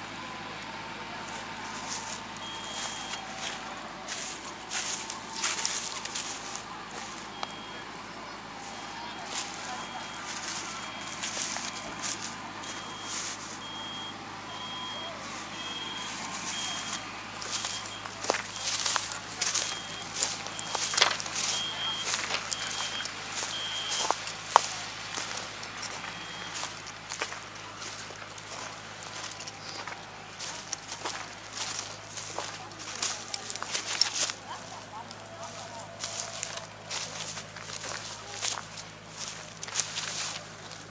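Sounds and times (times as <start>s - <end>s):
reversing alarm beeping: 0.0s - 34.2s
background voices: 0.0s - 40.9s.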